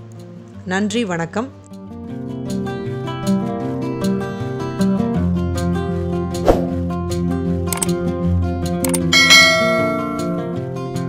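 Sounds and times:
background music: 0.0s - 11.0s
bright bell chime: 9.2s - 10.6s.

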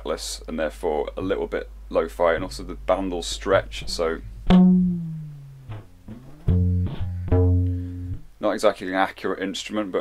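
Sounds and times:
rubber band guitar plucked: 2.2s - 8.4s.

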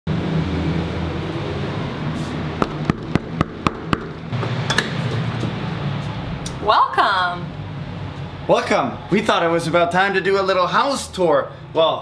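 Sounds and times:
knocking on a door: 2.6s - 4.2s.

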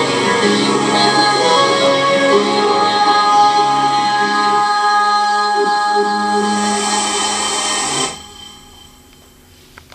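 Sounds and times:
women singing a chord: 0.0s - 7.4s.

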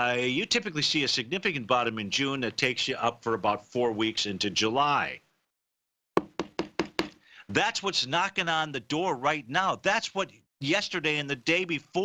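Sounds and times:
hand knocking on hard surface: 6.2s - 7.2s.

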